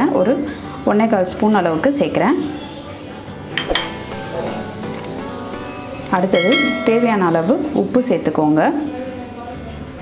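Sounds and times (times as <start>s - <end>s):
background music: 0.0s - 10.0s
sharp metallic clink: 5.9s - 7.3s.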